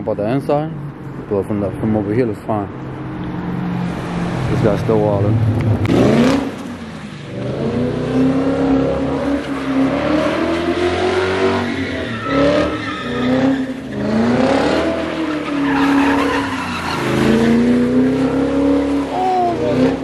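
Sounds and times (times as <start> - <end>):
car engine revving: 1.6 - 20.0.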